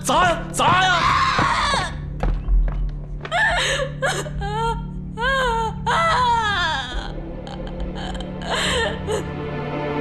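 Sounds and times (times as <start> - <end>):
background music: 0.0 - 10.0
young woman crying: 3.3 - 9.4.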